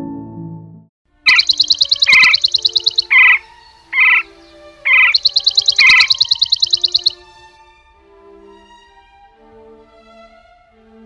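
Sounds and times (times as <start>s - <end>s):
low bird chirps: 1.3s - 7.2s
bird trilling: 1.3s - 7.3s.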